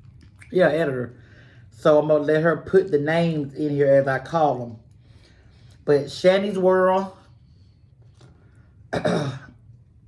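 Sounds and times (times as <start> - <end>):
woman clearing her throat: 8.9 - 9.6.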